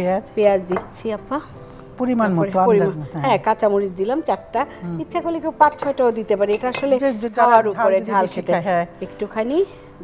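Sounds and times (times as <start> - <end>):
dishes clinking: 5.6 - 7.2.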